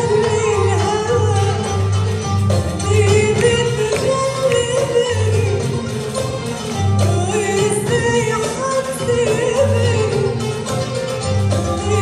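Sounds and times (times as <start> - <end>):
woman singing: 0.0 - 12.0.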